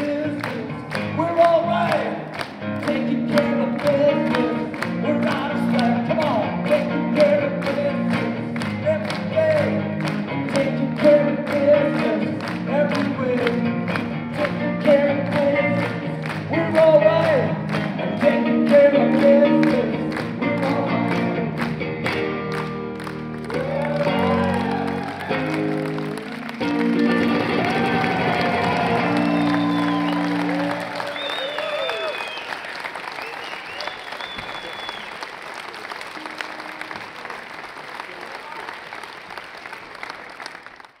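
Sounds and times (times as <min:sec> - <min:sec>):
live rock song with electric guitar: 0:00.0 - 0:32.0
crowd applauding and cheering: 0:00.0 - 0:41.0.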